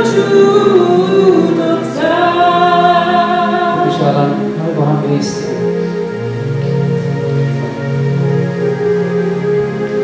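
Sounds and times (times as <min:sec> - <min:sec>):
woman singing into microphone: 0:00.0 - 0:04.4
sustained keyboard chords: 0:00.0 - 0:10.0.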